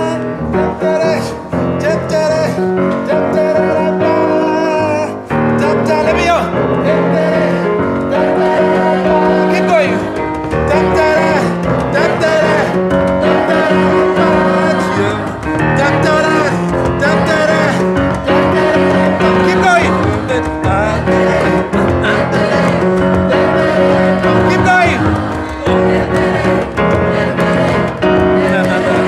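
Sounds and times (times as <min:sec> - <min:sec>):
piano accompaniment: 0:00.0 - 0:29.0
group singing in harmony: 0:05.5 - 0:29.0
hand drums: 0:14.5 - 0:28.9.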